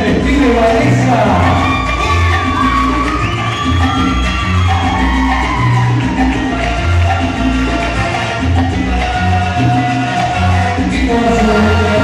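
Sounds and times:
salsa music over sound system: 0:00.0 - 0:12.0.

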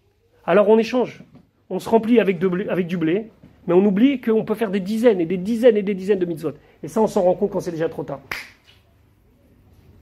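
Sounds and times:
person speaking: 0:00.0 - 0:09.4.

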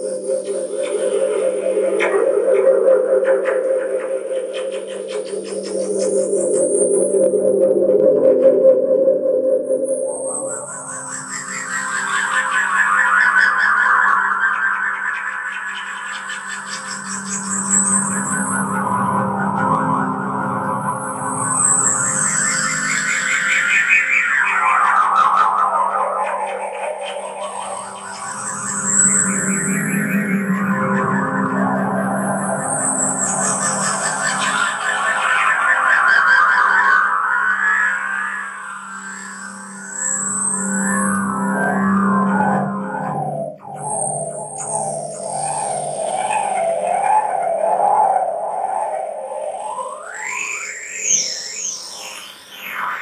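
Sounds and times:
synthesizer low drone: 0:00.0 - 0:25.0, 0:26.4 - 0:50.1
fluttering pulsing synth sweep: 0:27.2 - 0:35.8, 0:37.7 - 0:47.6.

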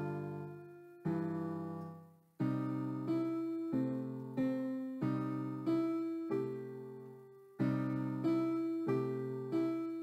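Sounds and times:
slow blues piano: 0:00.0 - 0:10.0.

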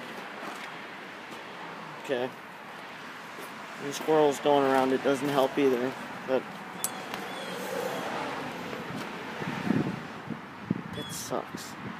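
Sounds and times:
outdoor background noise: 0:00.0 - 0:11.9.

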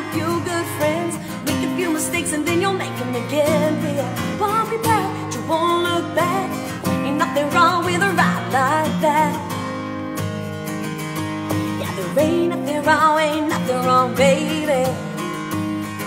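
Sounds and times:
woman singing wordless runs: 0:00.0 - 0:09.5, 0:11.8 - 0:15.0
acoustic guitar strummed: 0:00.0 - 0:16.0.

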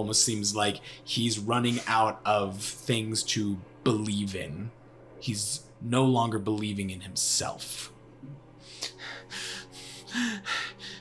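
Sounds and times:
soft background music: 0:00.0 - 0:11.0
man gasping breaths: 0:08.6 - 0:11.0.

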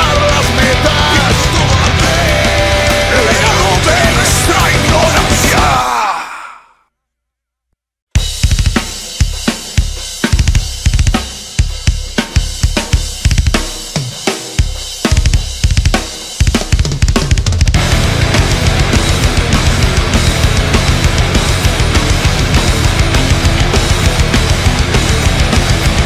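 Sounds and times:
drum kit beat: 0:00.0 - 0:06.0, 0:08.2 - 0:26.0
heavy metal music: 0:00.0 - 0:06.3, 0:08.2 - 0:26.0.

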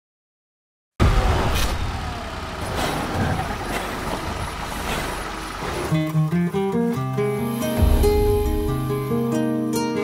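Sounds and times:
engine rumbling: 0:01.0 - 0:09.6.

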